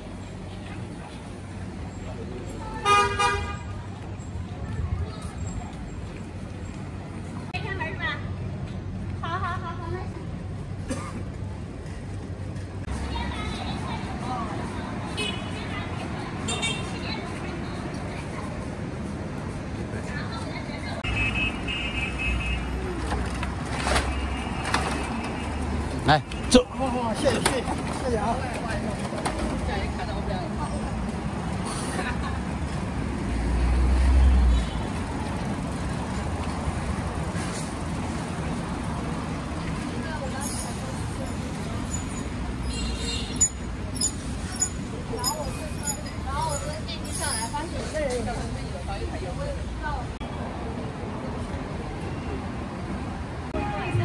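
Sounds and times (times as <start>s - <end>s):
low rumble of street traffic: 0.0s - 54.0s.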